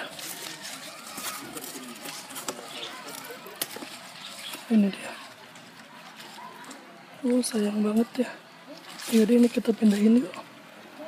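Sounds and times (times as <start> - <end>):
leaves rustling by hand: 0.0 - 11.0.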